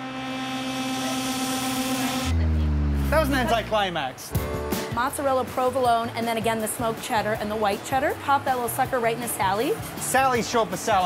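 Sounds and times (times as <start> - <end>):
suspense drone: 0.0 - 4.2.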